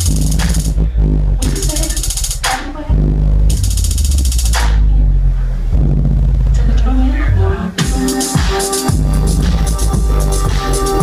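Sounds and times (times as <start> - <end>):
deep synthesizer bass: 0.0 - 11.0.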